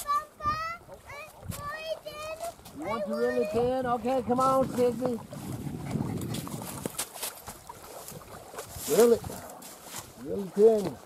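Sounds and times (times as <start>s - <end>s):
wind buffeting microphone: 0.3s - 11.0s.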